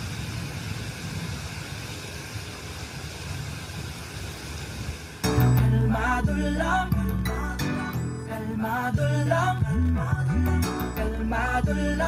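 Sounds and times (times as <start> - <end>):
rap music with bass and beat: 5.2 - 12.0.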